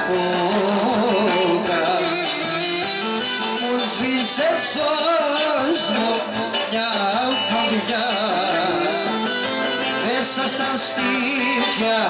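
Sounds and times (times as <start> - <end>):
amplified band playing: 0.0 - 12.0
man singing ornamented melody: 0.0 - 12.0.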